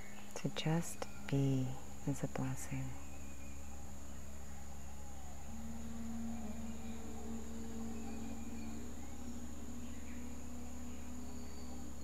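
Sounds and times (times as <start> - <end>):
high-pitched insect drone: 0.0 - 12.0
low steady rumble: 0.0 - 12.0
soft sustained low tones: 0.0 - 12.0.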